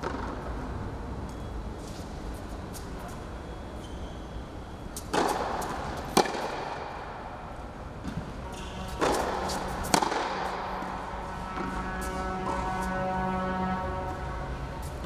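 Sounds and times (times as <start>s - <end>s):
racket hitting tennis ball: 0.0s - 0.6s, 4.9s - 12.9s.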